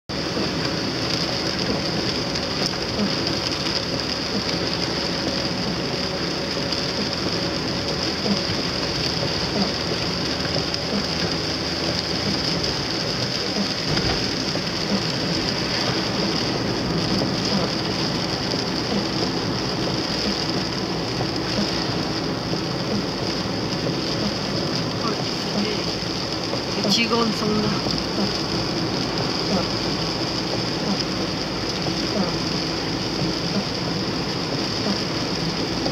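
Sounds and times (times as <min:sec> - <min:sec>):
car engine: 0:00.1 - 0:35.9
heavy rain on car: 0:00.1 - 0:35.9
tyres on wet road: 0:00.1 - 0:35.9.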